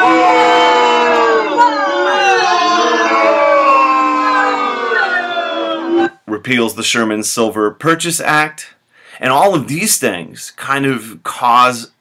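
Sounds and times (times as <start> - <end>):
group of voices singing long notes: 0.0 - 6.1.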